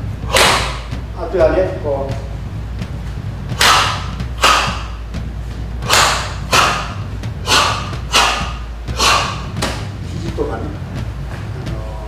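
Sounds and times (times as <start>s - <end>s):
hands striking wall: 5.8s - 10.0s.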